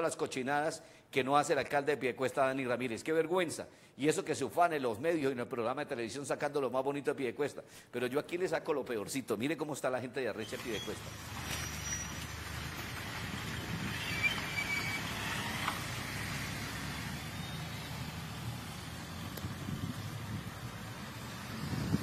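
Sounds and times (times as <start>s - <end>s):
road traffic rumble: 10.5s - 22.0s.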